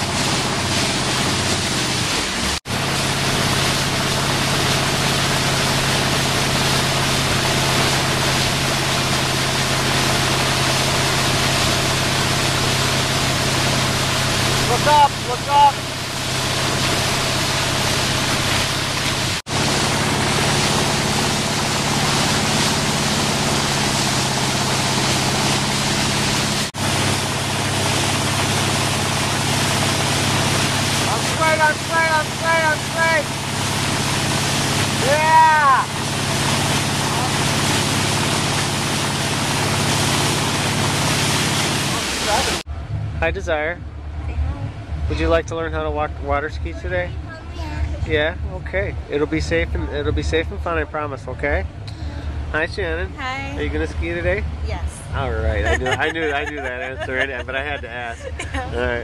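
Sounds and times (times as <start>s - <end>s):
water spray: 0.0s - 42.7s
boat motor droning: 0.0s - 59.0s
person shouting: 35.0s - 35.9s, 55.7s - 59.0s.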